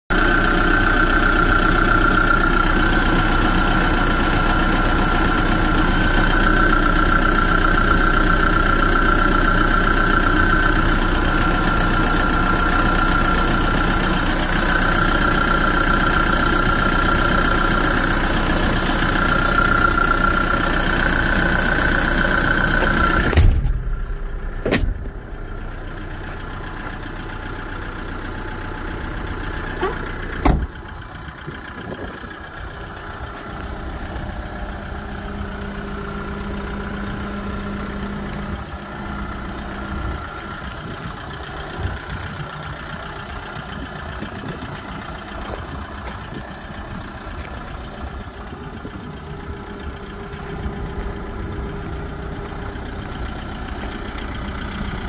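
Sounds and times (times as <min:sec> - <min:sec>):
truck engine idling: 0:00.1 - 0:55.0
thump: 0:23.2 - 0:23.9, 0:24.6 - 0:25.2, 0:30.4 - 0:30.7
engine cover click: 0:24.6 - 0:25.2.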